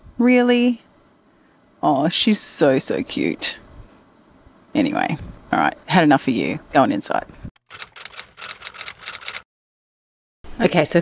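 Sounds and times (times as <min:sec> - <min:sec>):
typewriter key clicks: 0:07.7 - 0:09.4.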